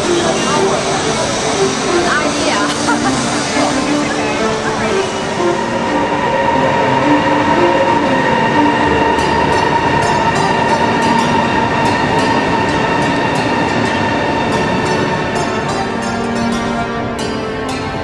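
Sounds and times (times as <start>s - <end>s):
electric train whine and rush: 0.0s - 18.0s.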